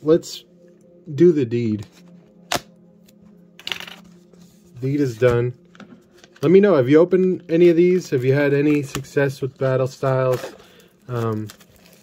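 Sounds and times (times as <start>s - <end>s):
plastic wrap tearing: 10.1s - 12.0s.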